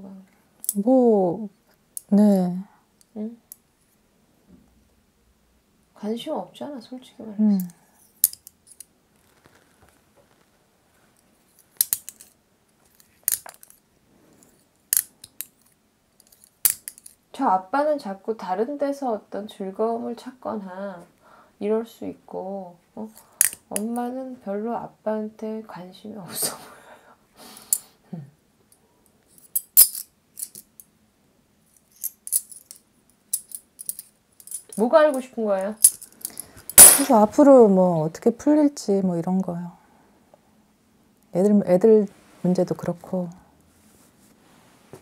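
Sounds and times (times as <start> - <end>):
light metallic clinking: 31.7 - 37.2.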